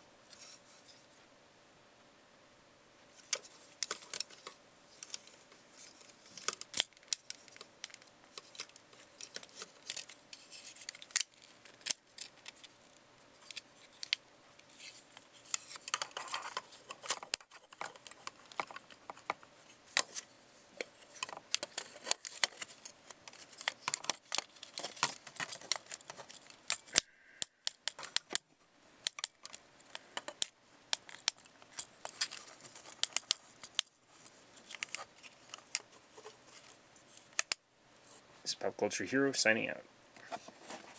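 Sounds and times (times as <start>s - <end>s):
handling rustle: 3.1s - 38.3s, 38.9s - 40.9s
plastic toy parts clicking: 6.4s - 20.2s, 20.8s - 28.4s, 29.0s - 37.6s.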